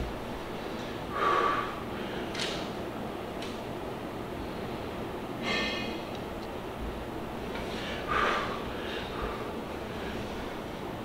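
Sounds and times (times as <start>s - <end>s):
man's forceful breath: 1.0s - 2.4s, 7.6s - 10.5s.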